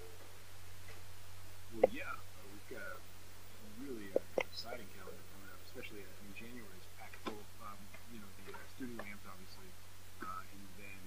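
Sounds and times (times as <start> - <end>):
steady low hum: 0.0 - 11.0
soft low voices speaking: 1.7 - 11.0.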